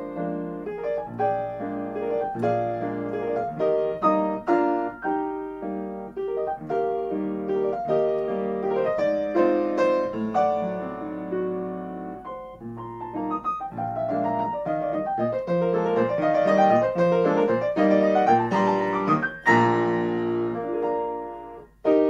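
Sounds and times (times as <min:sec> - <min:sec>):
grand piano waltz: 0:00.0 - 0:22.0.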